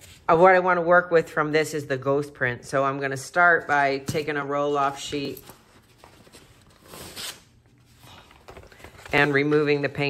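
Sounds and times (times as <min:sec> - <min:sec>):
paper rustling: 0:05.4 - 0:10.0.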